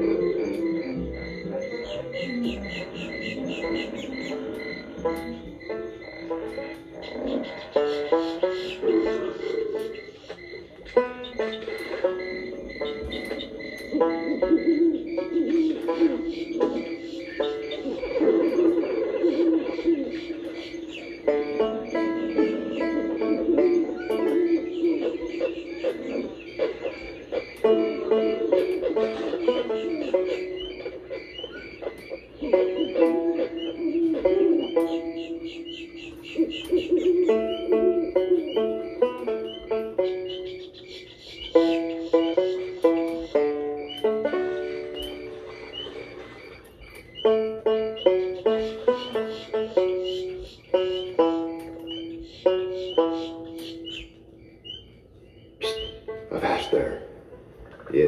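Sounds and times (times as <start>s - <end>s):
plucked banjo tune: 0.0s - 54.4s, 55.6s - 58.0s.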